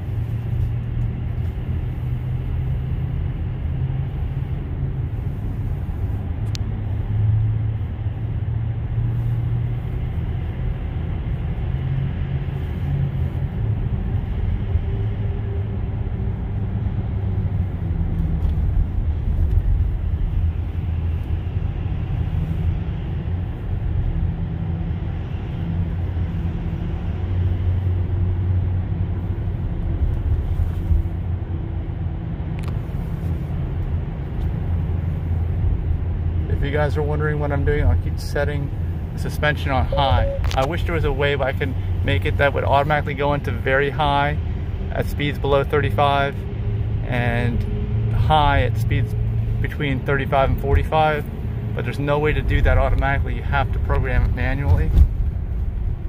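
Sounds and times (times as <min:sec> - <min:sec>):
tyre and road noise rumble: 0:00.0 - 0:56.0.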